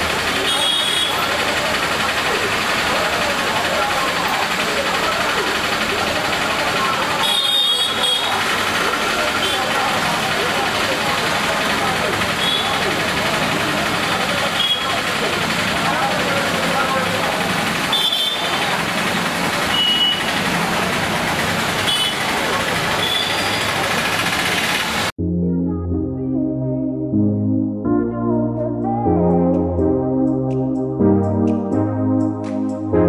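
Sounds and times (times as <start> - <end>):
motorbikes and traffic passing: 0.0 - 25.2
synthesizer music: 25.2 - 33.0.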